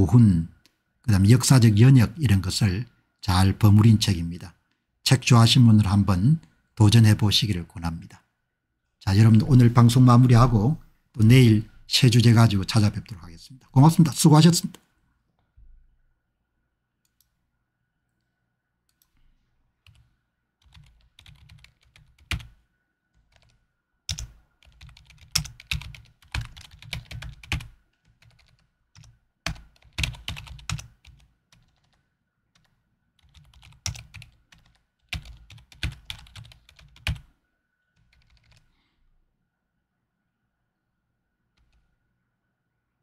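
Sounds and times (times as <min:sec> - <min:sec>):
typing on computer keyboard: 0:19.8 - 0:22.6, 0:23.2 - 0:32.0, 0:32.6 - 0:37.3, 0:38.0 - 0:38.7.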